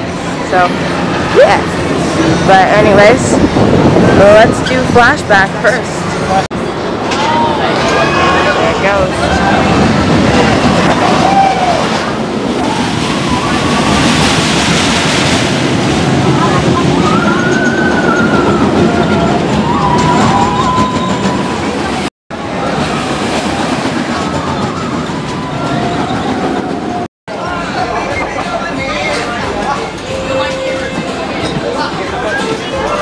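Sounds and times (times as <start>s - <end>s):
roller coaster rumbling roar: 0.0s - 33.0s.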